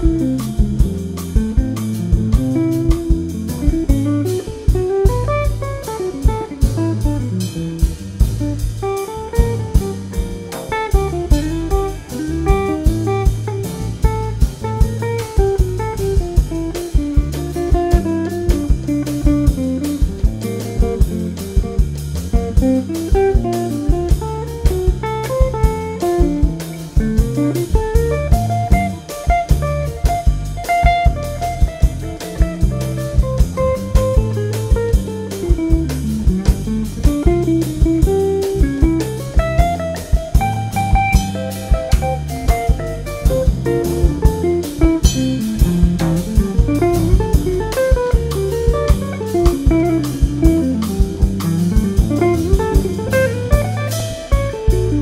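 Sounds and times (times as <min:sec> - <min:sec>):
drum kit hits: 0:00.0 - 0:55.0
electric bass: 0:00.0 - 0:55.0
electric guitar melody: 0:00.0 - 0:55.0.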